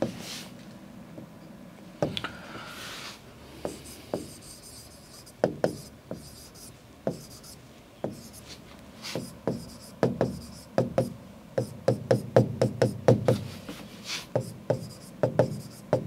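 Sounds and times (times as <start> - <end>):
stylus scratching on glass: 3.7 - 10.7, 14.3 - 16.0
stylus tapping on glass: 5.4 - 6.3, 7.1 - 7.3, 9.4 - 13.4, 14.4 - 16.0.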